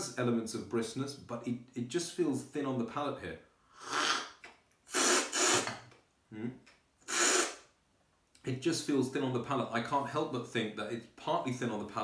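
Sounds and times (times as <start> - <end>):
person slurping tea noisily: 3.8 - 5.8, 7.0 - 7.6
low throat sound: 3.8 - 7.6.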